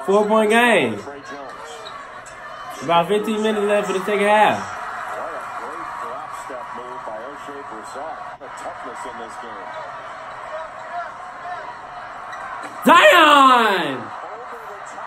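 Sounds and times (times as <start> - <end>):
man shouting loudly: 0.0 - 1.0, 2.8 - 4.6, 12.8 - 14.1
commentator talking: 0.0 - 1.1, 2.8 - 4.7, 12.8 - 14.1
arena crowd noise: 0.0 - 15.0.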